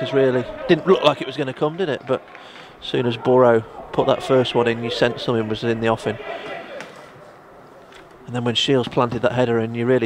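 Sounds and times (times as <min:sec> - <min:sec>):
man speaking: 0:00.0 - 0:02.2, 0:02.8 - 0:06.4, 0:08.2 - 0:10.0
faint background noise: 0:00.0 - 0:10.0.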